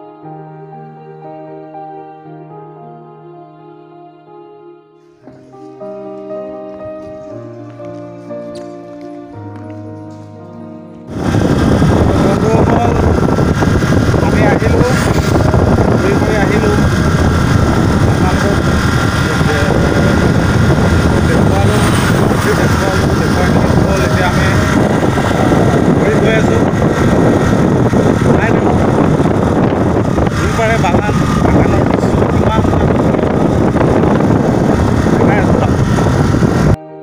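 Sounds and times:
wind buffeting microphone: 11.1 - 36.8.

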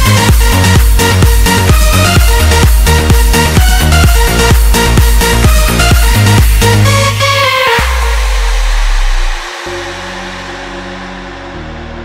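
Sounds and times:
deep bass note: 0.0 - 12.0
sustained synth chord: 0.0 - 12.0.

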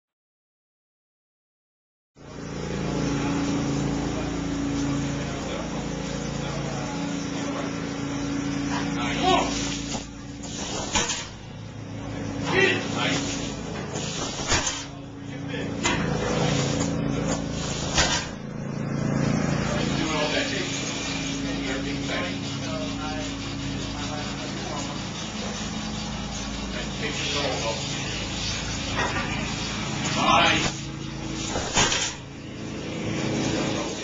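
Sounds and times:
mechanical hum with hiss: 2.2 - 34.0.

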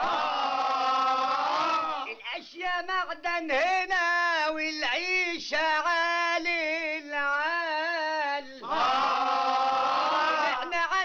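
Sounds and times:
men chanting in unison: 7.0 - 11.0.

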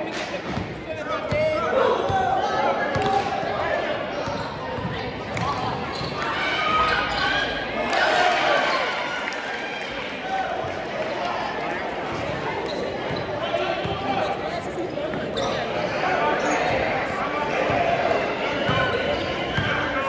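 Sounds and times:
crowd chatter echoing: 0.0 - 20.0.

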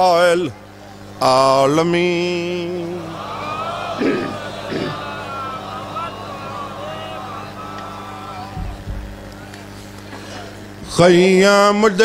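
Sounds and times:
public address system hum: 1.2 - 9.8
faint wavering voices: 2.7 - 9.9.

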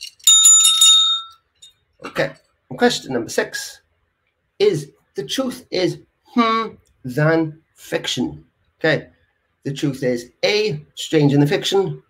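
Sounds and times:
bell ringing rapidly: 0.0 - 1.4.

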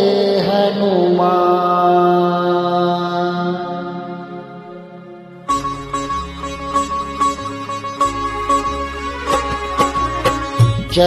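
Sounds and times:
man chanting: 0.0 - 4.7, 10.8 - 11.0.

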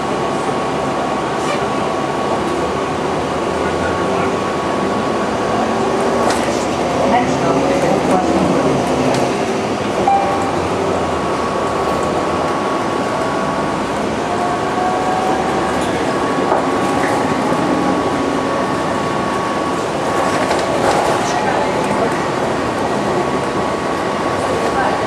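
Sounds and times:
vehicle running noise: 0.0 - 25.0
thin high whine: 10.0 - 11.0.

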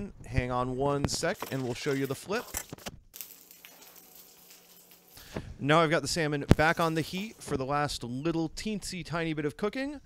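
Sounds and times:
oil sizzling around fish: 1.5 - 5.4, 6.5 - 7.5.

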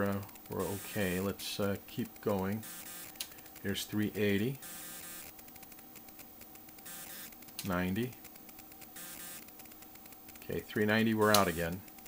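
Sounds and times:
electrical hum and hiss: 0.0 - 12.0
rapid faint clicking: 0.0 - 12.0.

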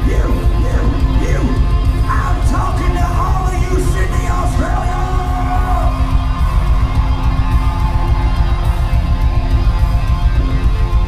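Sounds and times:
electric guitar: 0.0 - 11.0
rock band playing live: 0.0 - 11.0.

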